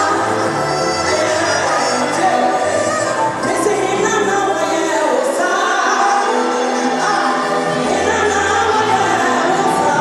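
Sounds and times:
live band playing: 0.0 - 10.0
woman singing into microphone: 0.0 - 10.0.

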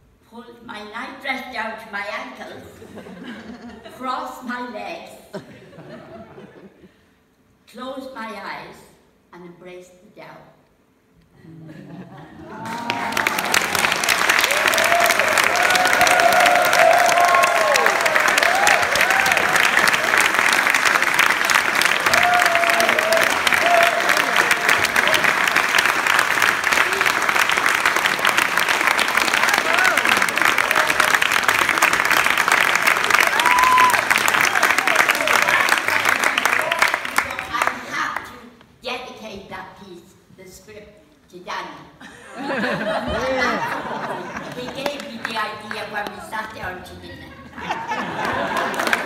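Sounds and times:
audience applauding: 12.4 - 38.0, 47.6 - 49.0.

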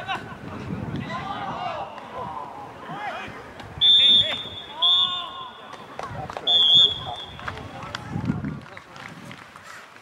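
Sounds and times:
voices calling and chatting: 0.0 - 10.0.

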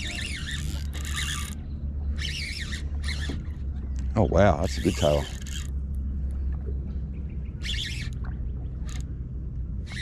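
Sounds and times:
fishing reel gears whirring: 0.0 - 3.8, 4.6 - 6.4, 7.5 - 10.0.

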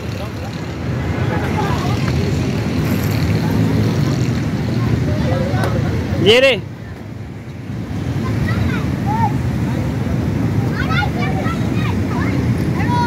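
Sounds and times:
faint voices: 0.0 - 13.0.

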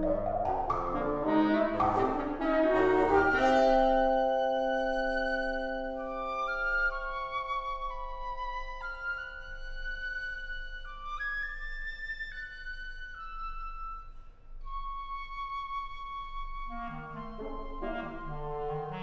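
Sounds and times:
piccolo melody: 0.0 - 19.0
wind instruments playing: 0.0 - 19.0.

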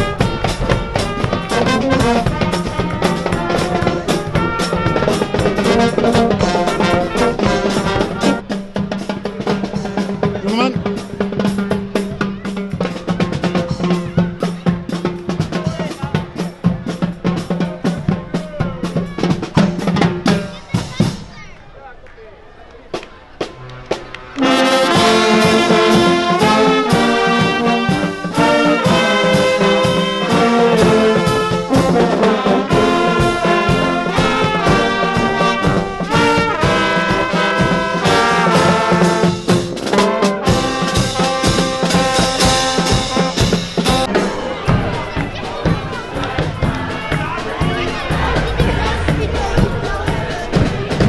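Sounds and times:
brass section playing tune: 0.0 - 8.5, 24.4 - 39.2
marching band drums: 0.0 - 21.4, 23.4 - 51.0
bass drum beats: 45.8 - 51.0.

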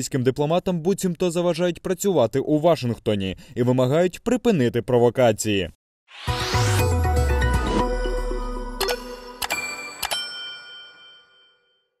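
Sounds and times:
bright ringing ding: 8.8 - 12.0.

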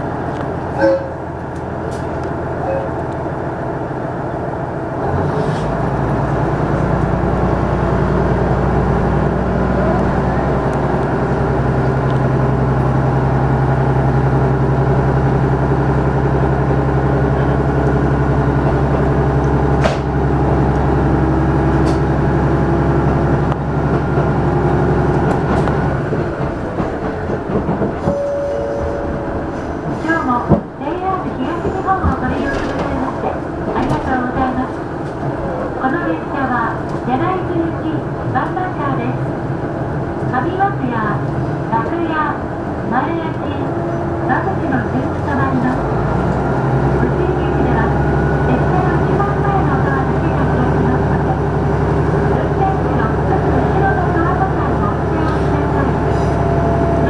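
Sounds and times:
diesel railcar engine drone: 0.0 - 57.0
railcar running rumble: 0.0 - 57.0.

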